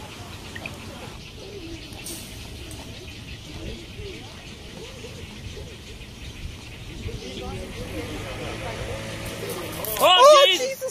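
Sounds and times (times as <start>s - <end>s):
people talking: 0.0s - 10.9s.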